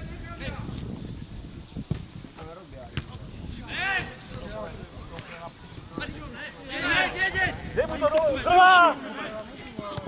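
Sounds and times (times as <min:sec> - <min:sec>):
wind rumble on microphone: 0:00.0 - 0:08.5
footballers shouting: 0:03.5 - 0:10.0.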